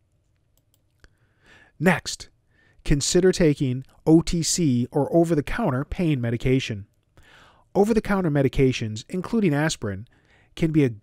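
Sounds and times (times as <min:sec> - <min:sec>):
faint breath: 0:01.0 - 0:01.8, 0:07.2 - 0:07.7, 0:10.1 - 0:10.6
narrator speaking: 0:01.8 - 0:06.9, 0:07.8 - 0:11.0.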